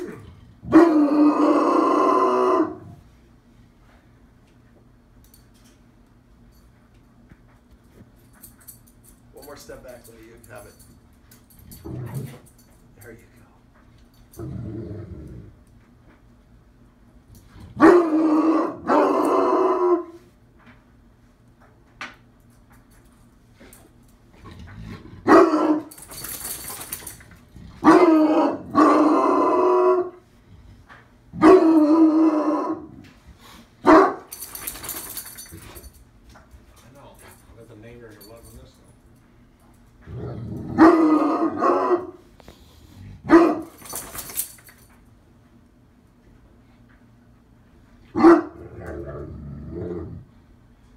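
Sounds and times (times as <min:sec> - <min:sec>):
dog barking deeply: 0:17.8 - 0:20.1, 0:25.2 - 0:25.9, 0:27.8 - 0:30.1, 0:31.4 - 0:32.9, 0:40.7 - 0:42.2, 0:43.2 - 0:43.6, 0:48.2 - 0:49.2.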